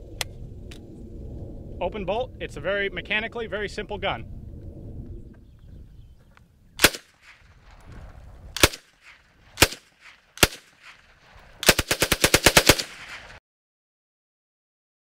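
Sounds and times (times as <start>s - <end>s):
submachine gun shots: 6.8s - 7.5s, 8.6s - 13.4s
submachine gun burst: 8.6s - 13.4s.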